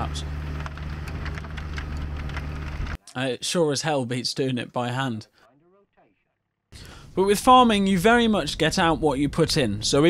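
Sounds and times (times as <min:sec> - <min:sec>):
tractor engine running: 0:00.0 - 0:03.0.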